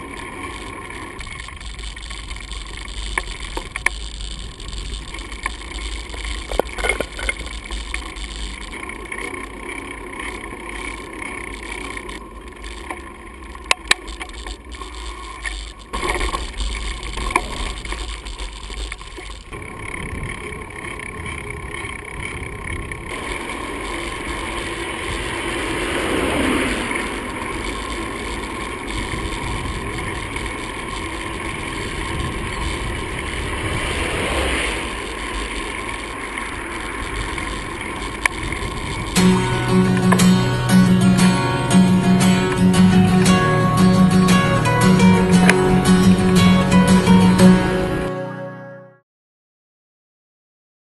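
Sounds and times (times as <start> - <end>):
sharp clicks: 0.0 - 9.6, 10.2 - 22.9, 37.0 - 47.6
wind noise: 0.0 - 12.9, 14.0 - 48.1
bike tyres on paved road: 0.0 - 47.4.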